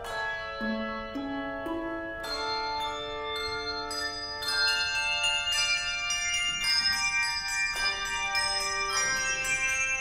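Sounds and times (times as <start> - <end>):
handbell choir playing chords: 0.0 - 10.0.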